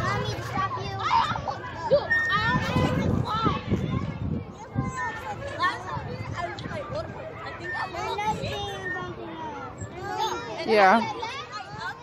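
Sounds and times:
young children calling and chattering: 0:00.0 - 0:12.0.

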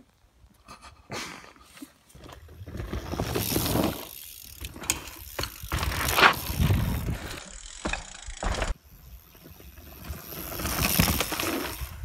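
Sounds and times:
bike tyres rolling over dirt trail: 0:02.0 - 0:12.0.

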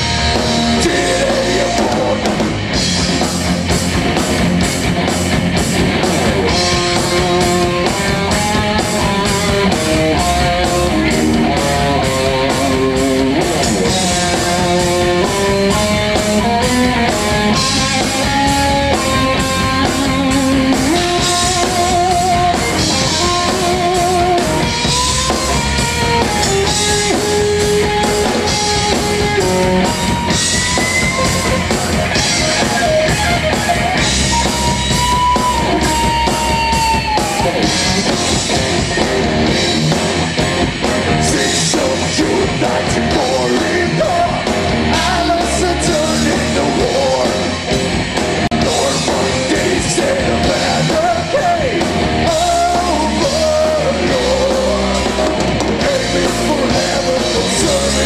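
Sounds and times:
heavy metal band playing live: 0:00.0 - 0:58.0.

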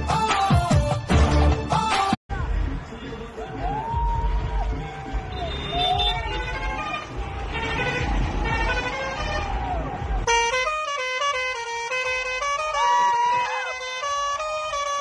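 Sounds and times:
bus engine rumbling: 0:02.3 - 0:15.0
musical horn gliding tune: 0:05.3 - 0:15.0.

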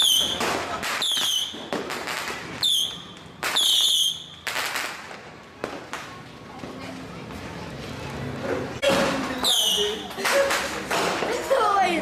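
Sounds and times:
small firecracker cracks: 0:00.0 - 0:06.2
firecrackers banging: 0:00.0 - 0:11.7.

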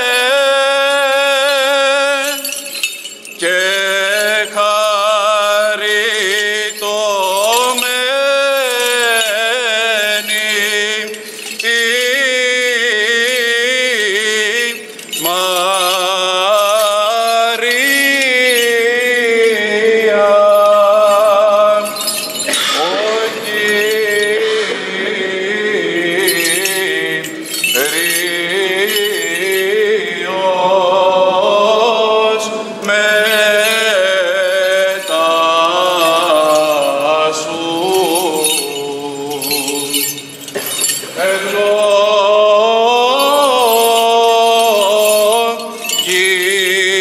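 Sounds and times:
man chanting: 0:00.0 - 0:47.0.

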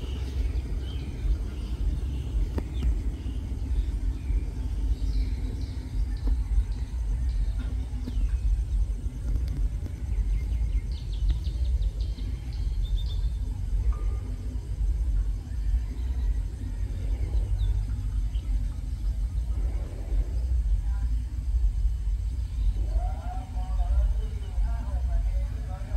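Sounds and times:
birds chirping: 0:00.0 - 0:25.9
diesel locomotive rumbling: 0:00.0 - 0:25.9.

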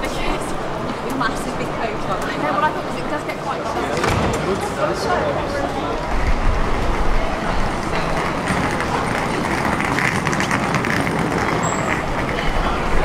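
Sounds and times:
passers-by talking: 0:00.0 - 0:13.0
road traffic rumble: 0:00.0 - 0:13.0.

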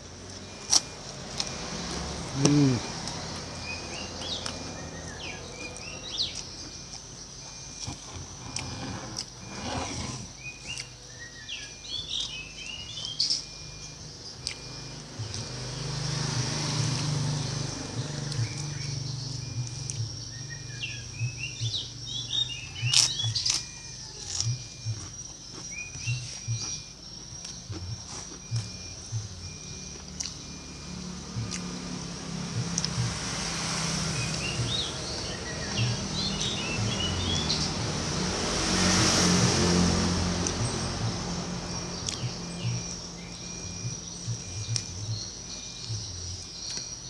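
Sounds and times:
vehicle passing by: 0:00.0 - 0:26.6, 0:27.2 - 0:47.0
small birds chirping: 0:00.0 - 0:47.0.

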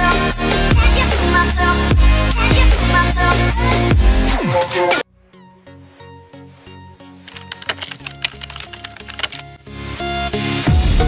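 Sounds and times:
electronic background music: 0:03.9 - 0:09.7
keyboard key clicks: 0:07.3 - 0:09.5.

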